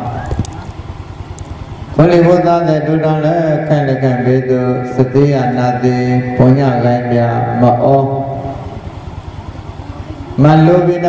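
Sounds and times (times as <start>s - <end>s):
low rumble and hiss: 0.0s - 11.0s
man chanting: 2.0s - 8.8s, 10.4s - 11.0s.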